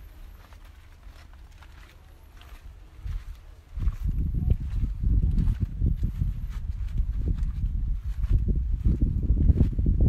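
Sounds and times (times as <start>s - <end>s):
rumbling and thudding on microphone: 3.0s - 10.0s.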